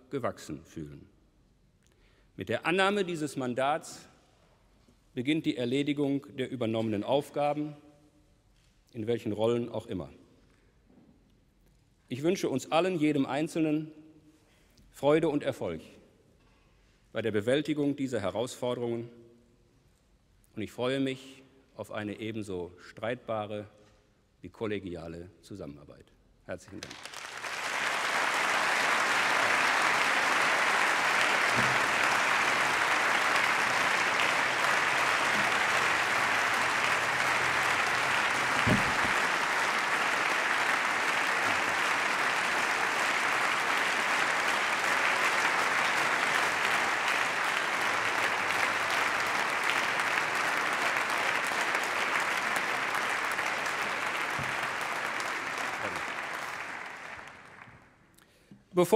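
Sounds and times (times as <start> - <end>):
dense steady clapping: 26.7 - 57.7.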